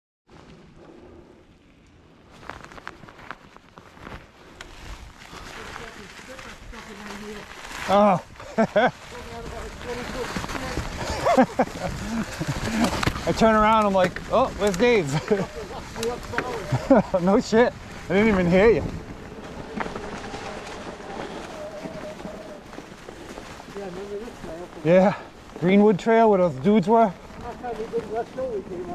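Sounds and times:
bike tyres crackling through leaves: 0.3s - 28.9s.

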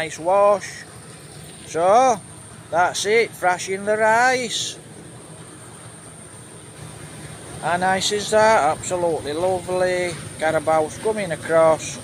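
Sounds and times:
distant rice thresher drone: 0.0s - 12.0s.

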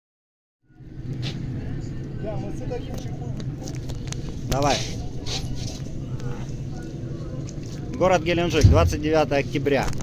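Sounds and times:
faint voices: 0.7s - 10.0s.

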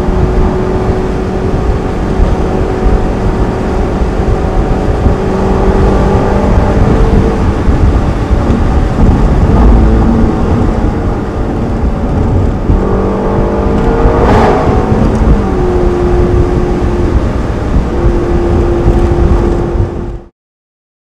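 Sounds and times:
car engine accelerating: 0.0s - 20.3s
wind rumble: 0.0s - 20.3s.

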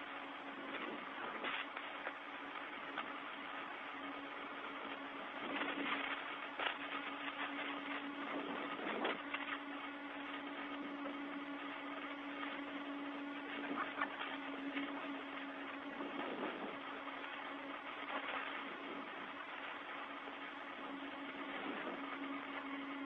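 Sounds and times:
low hum: 0.0s - 23.0s
radio hiss: 0.0s - 23.0s.

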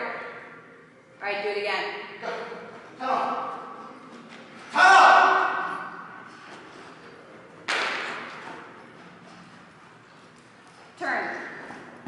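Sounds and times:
thud echoing in a hall: 7.6s - 8.6s.

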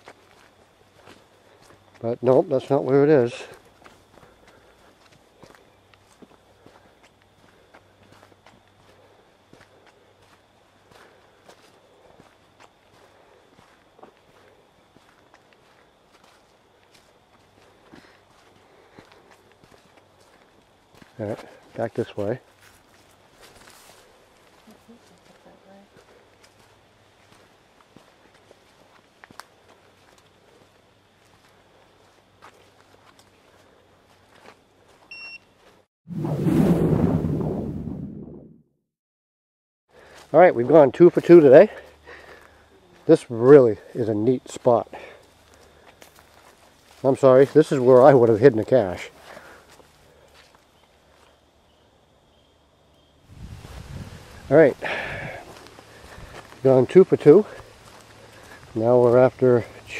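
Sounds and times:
footsteps on dirt trail: 0.0s - 35.9s, 39.9s - 51.6s, 53.2s - 59.9s.

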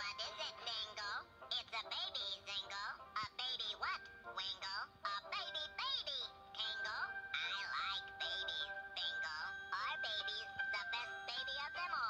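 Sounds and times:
background music: 0.0s - 12.0s
high-pitched babbling cartoon voices: 0.0s - 12.0s.

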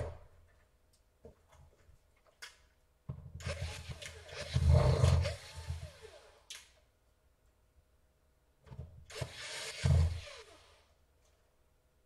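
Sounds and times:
cordless drill driving screw: 3.4s - 6.4s, 9.1s - 10.8s.

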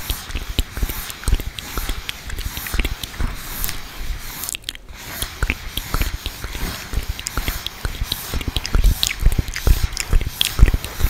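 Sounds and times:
lip and tongue clicks: 0.0s - 11.0s.

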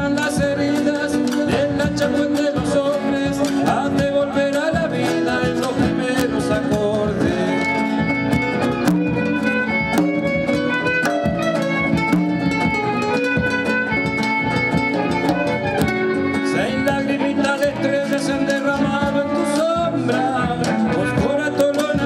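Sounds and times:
bowed violin melody: 0.0s - 22.0s
strummed acoustic guitars: 0.0s - 22.0s.

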